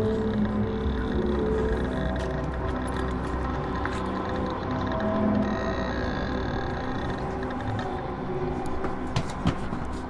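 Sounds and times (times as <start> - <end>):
low rumble: 0.0 - 9.2
low sustained drone tones: 0.0 - 10.0.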